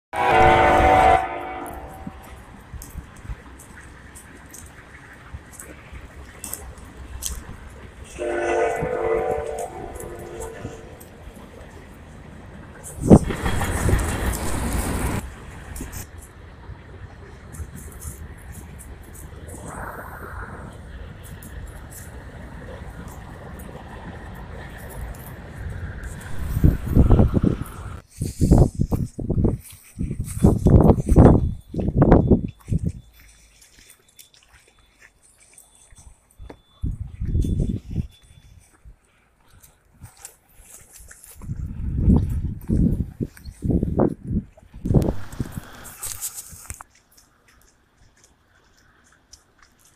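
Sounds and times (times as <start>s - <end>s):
horn long blast: 0.2s - 2.4s, 8.1s - 11.1s.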